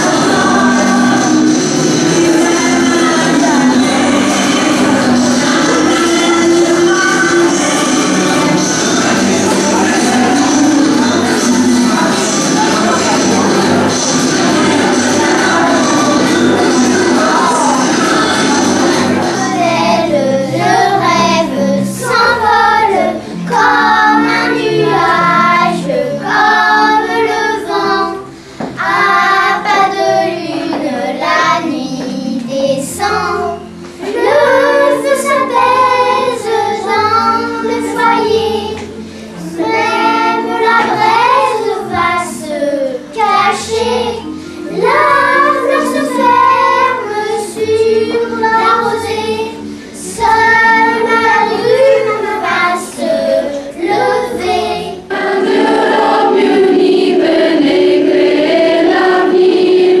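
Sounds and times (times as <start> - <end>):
children singing: 0.0 - 60.0
choir of women singing: 0.0 - 60.0.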